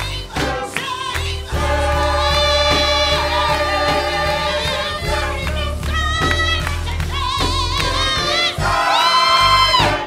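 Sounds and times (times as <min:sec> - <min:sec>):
gospel choir singing with instruments: 0:00.0 - 0:10.0.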